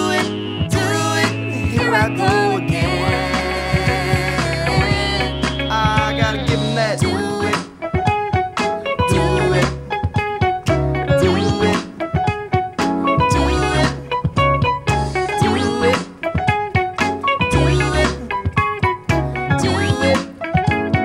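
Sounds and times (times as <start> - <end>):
funk band playing: 0.0 - 21.0.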